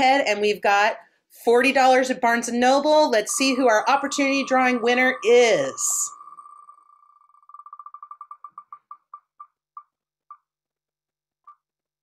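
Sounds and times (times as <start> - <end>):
spinning wheel ticking: 3.1 - 10.4.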